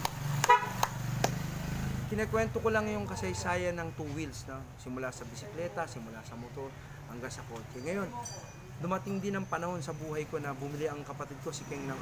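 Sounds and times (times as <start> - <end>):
slow hand claps: 0.0 - 1.4
vehicle horn toot: 0.4 - 0.8.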